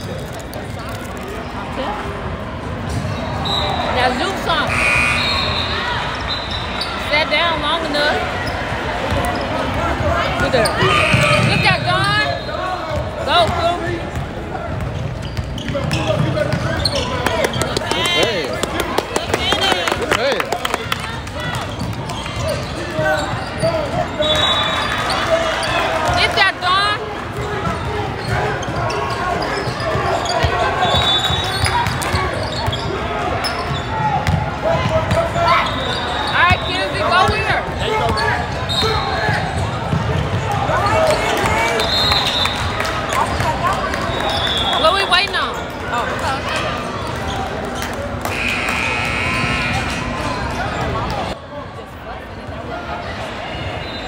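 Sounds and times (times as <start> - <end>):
chatter and shouts of people: 0.0 - 54.0
sneaker squeaks: 2.9 - 51.4.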